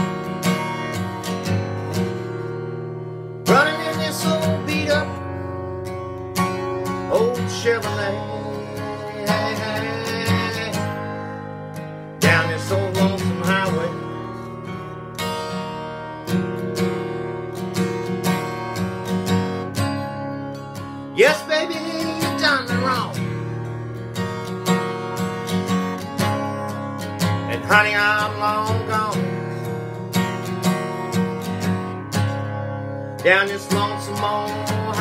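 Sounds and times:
acoustic guitar strummed blues: 0.0s - 35.0s.

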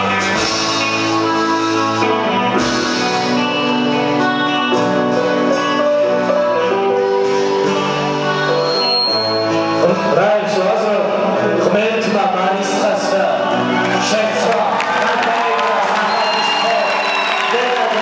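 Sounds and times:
electric guitar: 0.0s - 15.0s
drums: 0.0s - 18.0s.

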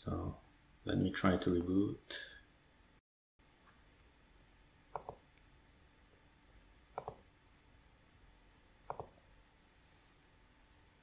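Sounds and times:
computer mouse clicks: 4.9s - 5.2s, 7.0s - 7.2s, 8.9s - 9.2s.

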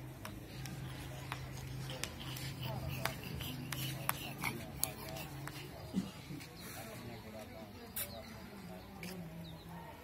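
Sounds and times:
man reciting a prayer: 1.4s - 9.2s.

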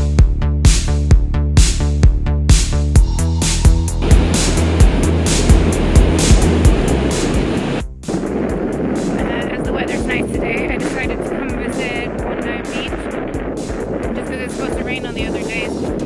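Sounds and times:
background music with steady beat: 0.0s - 16.0s
wind buffeting microphone: 4.0s - 16.0s
person speaking: 9.2s - 13.1s, 14.1s - 15.8s.

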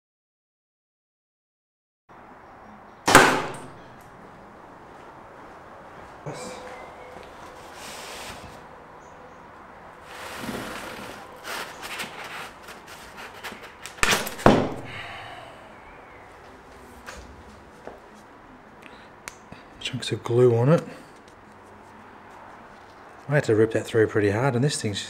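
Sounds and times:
arrow striking foam target: 3.0s - 3.8s, 14.0s - 14.9s
loud knocks: 14.4s - 14.9s.

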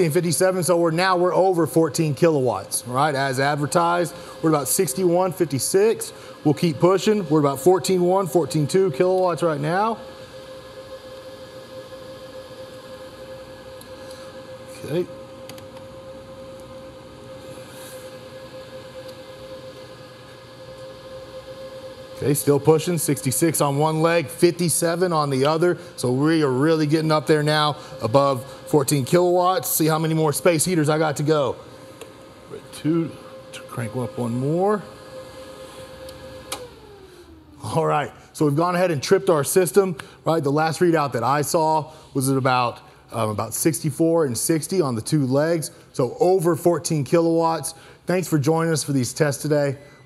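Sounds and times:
machine hum and fan noise: 0.0s - 50.0s.

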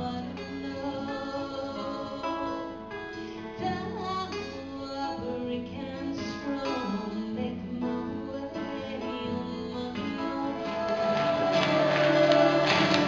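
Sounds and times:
acoustic guitars playing: 0.0s - 13.0s.

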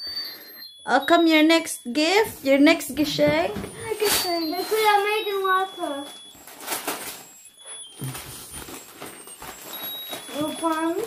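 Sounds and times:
wrapping paper crinkling and tearing: 4.0s - 7.4s, 8.0s - 11.0s.

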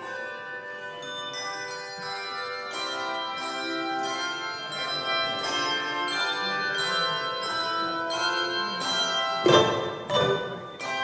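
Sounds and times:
handbell choir ringing: 0.0s - 11.0s.

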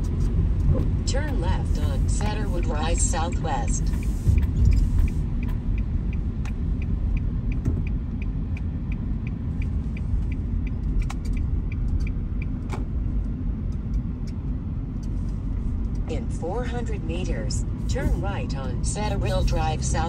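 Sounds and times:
car engine rumble: 0.0s - 20.0s
turn signal ticking: 0.0s - 20.0s
tyres on snowy road: 0.0s - 20.0s.

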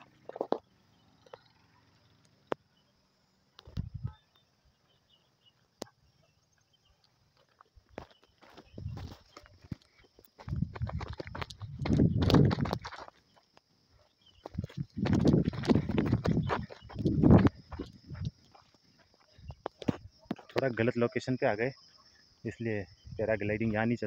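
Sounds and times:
footsteps on stony dirt path: 6.6s - 20.7s.

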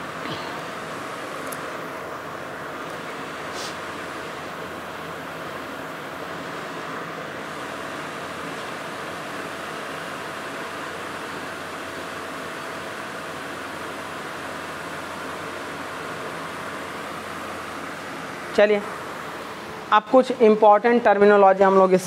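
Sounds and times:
faint constant hum: 0.0s - 22.0s
room noise hiss: 0.0s - 22.0s.

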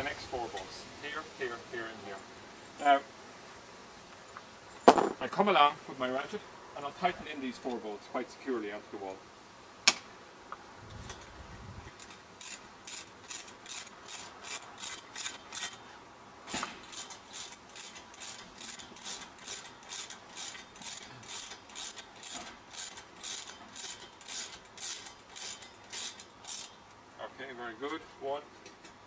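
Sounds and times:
single knock: 4.9s - 5.2s
socket wrench ratcheting: 11.9s - 15.8s, 16.8s - 26.8s.

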